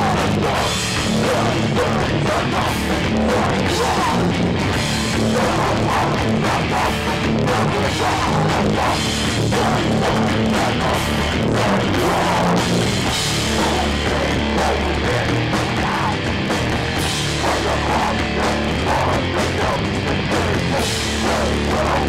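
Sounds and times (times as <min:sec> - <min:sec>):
bass guitar: 0:00.0 - 0:22.0
distorted electric guitar: 0:00.0 - 0:22.0
pounding drum kit: 0:00.0 - 0:22.0.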